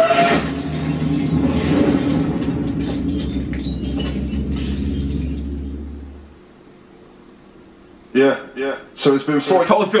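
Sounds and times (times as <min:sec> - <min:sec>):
heavy rumble: 0:00.2 - 0:06.7.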